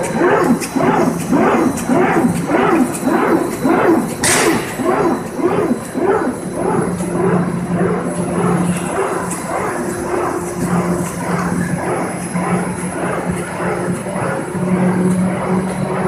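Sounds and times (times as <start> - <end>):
mechanical rumble: 0.0 - 16.0
production line machine drone: 0.0 - 16.0.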